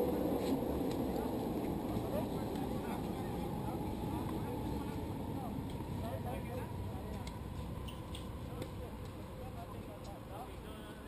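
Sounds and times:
faint distant voices: 0:00.0 - 0:11.0
outdoor background rumble: 0:00.0 - 0:11.0.

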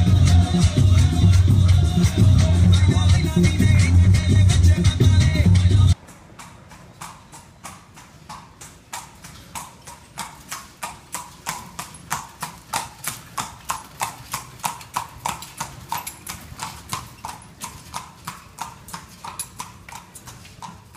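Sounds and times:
horse hooves clip-clopping: 0:00.0 - 0:20.9.

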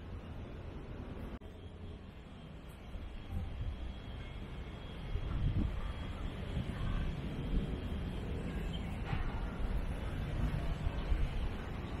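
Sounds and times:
wind rumbling on microphone: 0:05.1 - 0:12.0.

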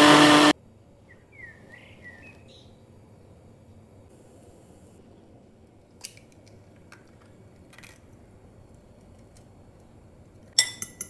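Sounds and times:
egg cracking: 0:05.9 - 0:11.0.

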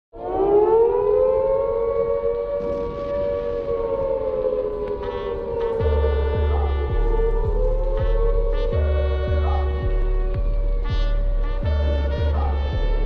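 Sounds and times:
air-raid siren wail: 0:00.2 - 0:13.0
deep bass hit: 0:05.7 - 0:13.0.

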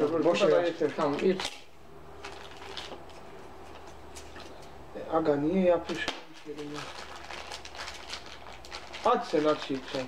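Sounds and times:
packaging crinkling: 0:00.0 - 0:03.2, 0:05.9 - 0:10.0.

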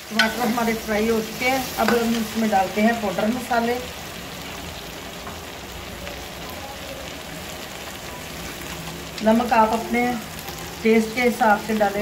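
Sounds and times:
masala sizzling in ghee: 0:00.0 - 0:12.0.

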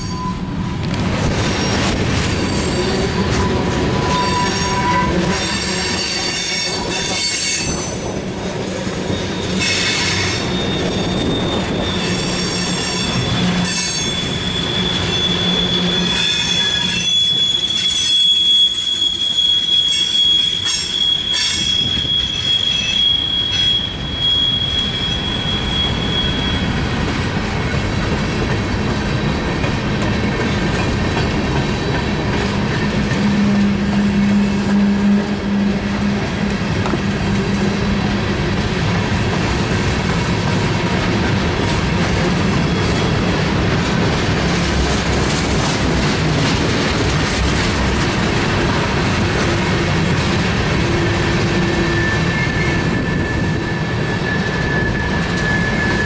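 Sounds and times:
high-pitched wheel squeal: 0:00.0 - 0:00.6, 0:01.6 - 0:08.1, 0:08.8 - 0:26.9, 0:33.1 - 0:36.5, 0:50.9 - 0:56.0
train wheels rumbling on rails: 0:00.0 - 0:56.0.

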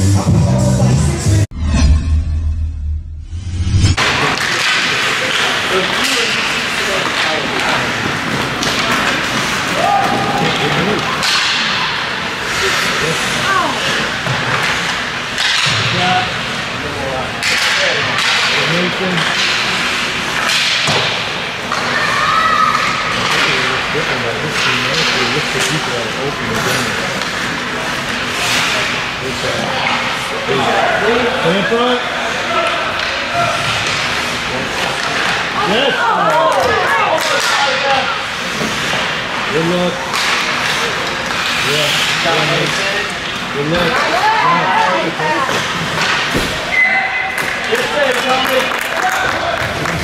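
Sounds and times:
music: 0:00.0 - 0:01.5
skates and sticks on ice: 0:04.0 - 0:16.6, 0:17.4 - 0:30.2, 0:36.4 - 0:44.4.

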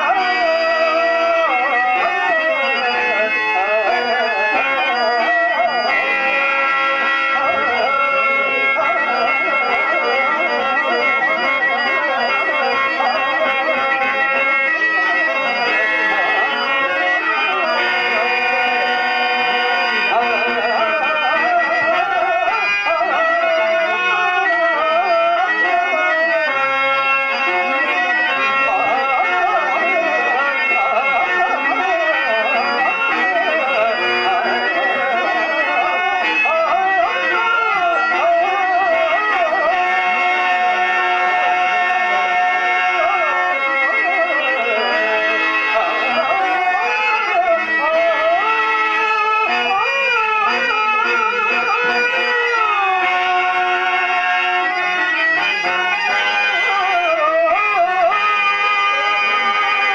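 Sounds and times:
harmonium melody: 0:00.0 - 0:59.9.

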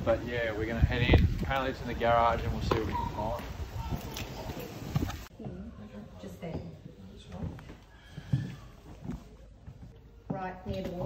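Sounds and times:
footsteps on a timber floor: 0:04.5 - 0:11.0.

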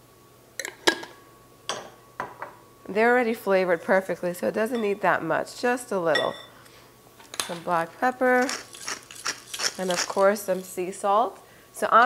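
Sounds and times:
kitchenware clinking on counter: 0:06.1 - 0:06.5.

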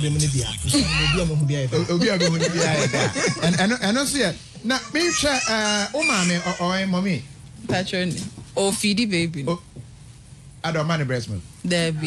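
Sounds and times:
laughter: 0:01.8 - 0:03.8.

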